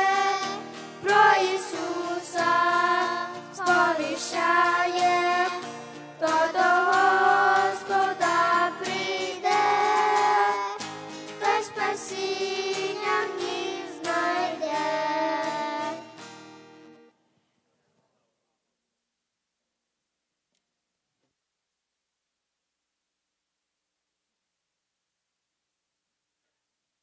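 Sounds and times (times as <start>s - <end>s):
children singing: 0.0s - 16.2s
acoustic guitar: 0.0s - 17.2s.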